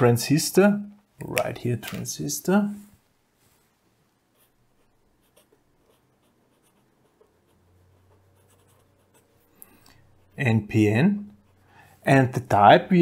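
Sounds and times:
pen scratching on paper: 4.3s - 10.6s.

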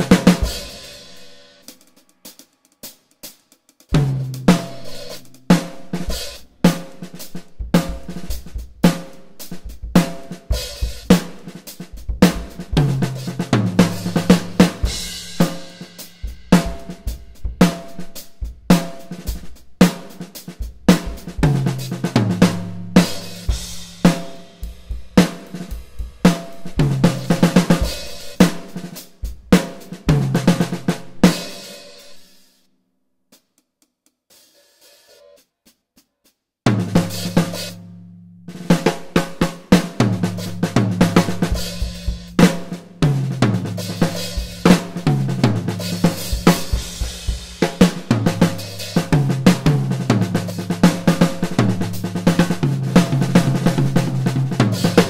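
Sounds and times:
drum kit groove: 0.0s - 32.6s, 33.3s - 55.0s
tom fills: 36.7s - 55.0s.

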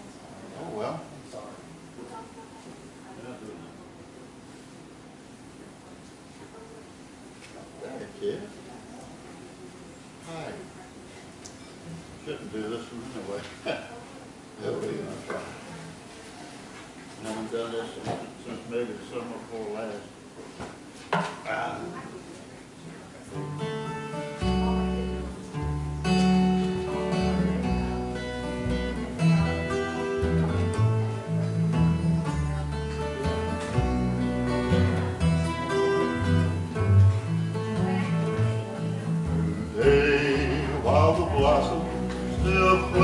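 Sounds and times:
acoustic guitar: 22.8s - 43.0s
plucked double bass: 23.4s - 43.0s.

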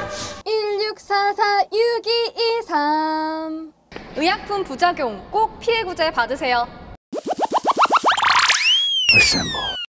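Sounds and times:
cartoon boing chirps: 7.4s - 9.9s.

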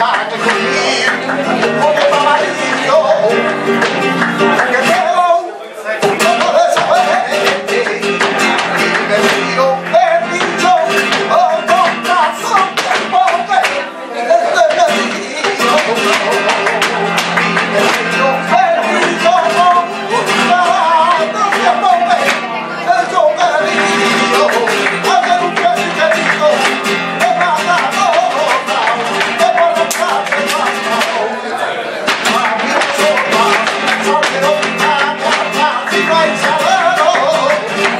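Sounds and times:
rapid hand-clapping: 0.0s - 5.3s, 6.0s - 13.8s, 14.6s - 22.5s, 23.2s - 31.2s, 32.1s - 37.9s
acoustic flamenco guitar: 0.0s - 37.9s
man singing: 0.0s - 37.9s.

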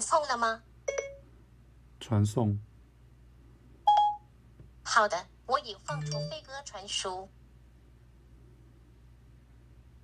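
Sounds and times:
short electronic beep: 3.9s - 4.2s.

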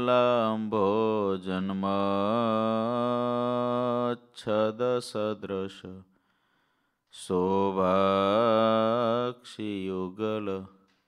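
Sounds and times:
man chanting: 0.0s - 6.0s, 7.1s - 10.8s.

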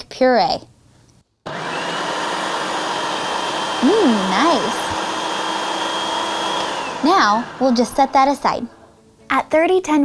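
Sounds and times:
food processor motor whirring: 1.5s - 8.8s.

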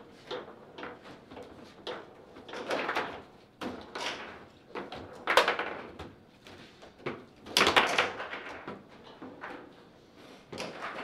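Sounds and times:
foosball rods sliding and clacking: 0.1s - 5.8s, 10.4s - 11.0s.

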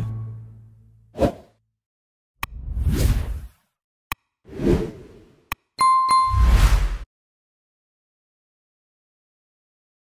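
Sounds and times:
whoosh sound effect: 6.3s - 7.0s.

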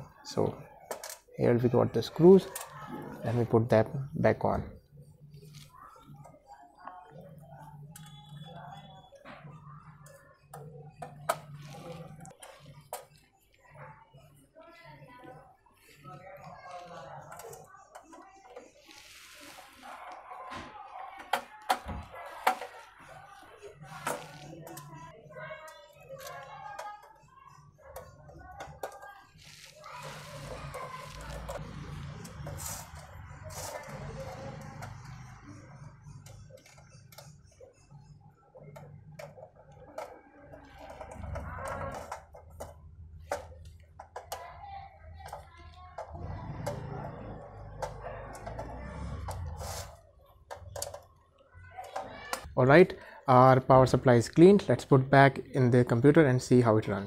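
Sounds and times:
faint background music: 0.0s - 57.0s
faint background voices: 0.0s - 57.0s.

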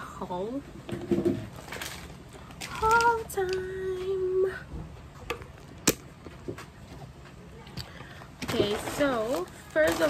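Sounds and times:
paper bag crackling: 1.5s - 3.4s, 8.4s - 10.0s.

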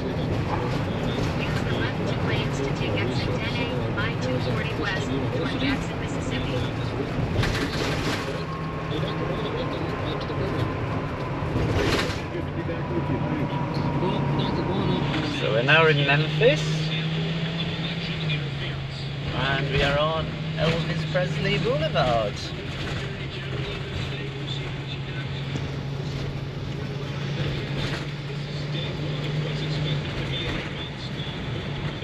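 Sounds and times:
faint indistinct voices: 0.0s - 10.8s, 16.4s - 32.0s
car road and engine noise: 0.0s - 32.0s.

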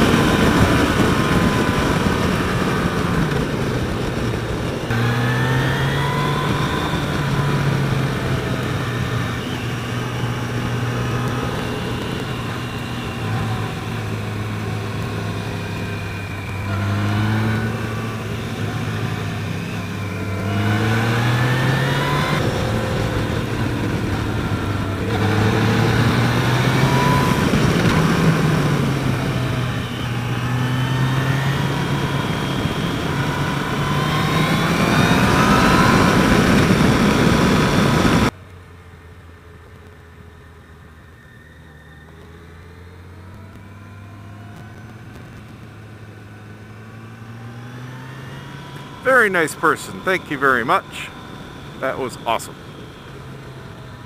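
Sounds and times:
wind rush on microphone: 0.0s - 38.4s
motorcycle engine accelerating: 0.0s - 54.0s.

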